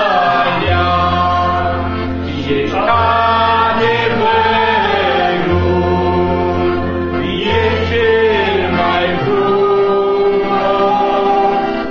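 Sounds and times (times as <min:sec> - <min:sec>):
group singing a hymn: 0:00.0 - 0:11.9.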